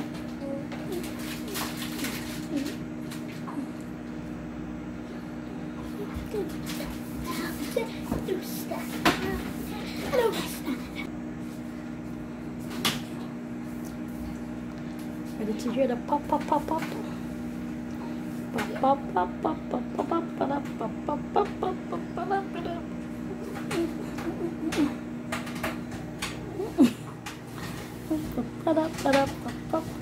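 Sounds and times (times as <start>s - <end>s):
microwave oven humming: 0.0s - 30.0s.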